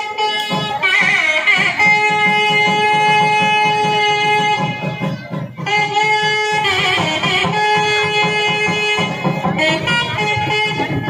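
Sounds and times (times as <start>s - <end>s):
drum beat: 0.0s - 11.0s
double-reed horn long note: 5.7s - 11.0s.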